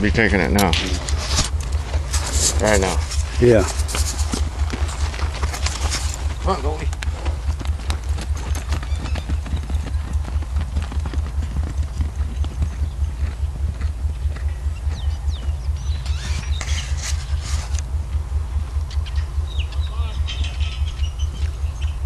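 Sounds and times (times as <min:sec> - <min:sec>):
horse hooves on dirt: 0:00.0 - 0:22.0.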